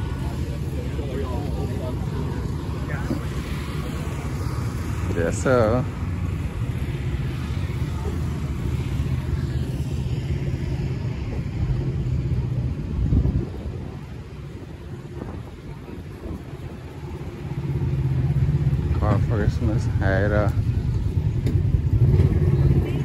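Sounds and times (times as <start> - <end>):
low engine drone: 0.0 - 23.0.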